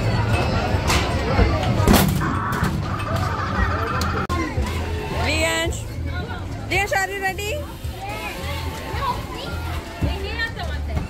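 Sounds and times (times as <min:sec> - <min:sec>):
children's voices: 0:07.8 - 0:10.6.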